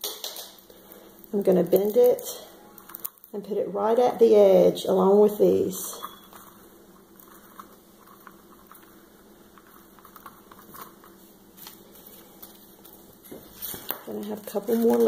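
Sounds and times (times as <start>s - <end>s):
faint steady hum: 0.0s - 15.0s
dry moss rustling and crackling: 0.7s - 3.4s, 6.3s - 15.0s.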